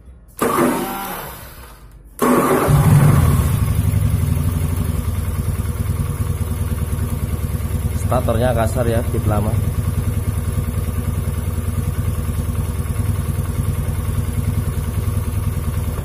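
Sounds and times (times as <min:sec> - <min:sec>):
scooter engine starting and running: 0:00.3 - 0:16.0.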